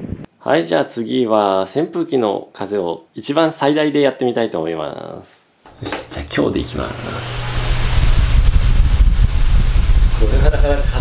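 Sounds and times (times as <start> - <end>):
wind buffeting microphone: 0.0 - 0.3, 6.5 - 11.0
hiss of rushing air: 6.2 - 11.0.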